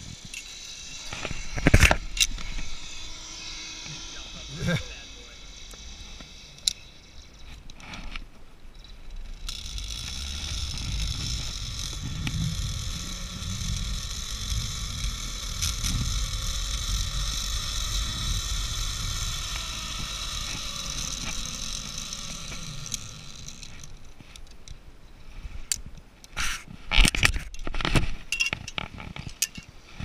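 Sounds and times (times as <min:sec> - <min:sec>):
pulley wheels whirring on cable: 0:00.0 - 0:24.7
wind rumbling on microphone: 0:00.0 - 0:30.0.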